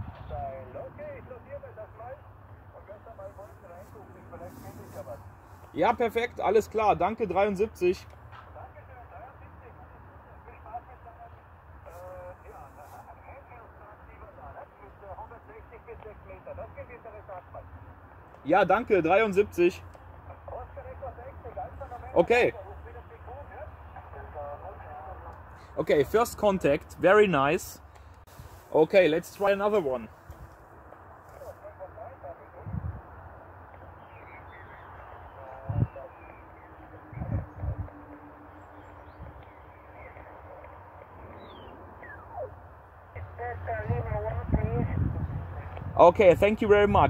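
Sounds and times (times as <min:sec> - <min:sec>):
steady low rumble: 0:00.0 - 0:17.9, 0:20.2 - 0:47.0
radio voice through small speaker: 0:00.3 - 0:05.2, 0:08.6 - 0:17.8, 0:18.5 - 0:27.8, 0:28.4 - 0:30.4, 0:31.3 - 0:33.0, 0:34.1 - 0:38.3, 0:39.8 - 0:41.3, 0:43.1 - 0:47.0.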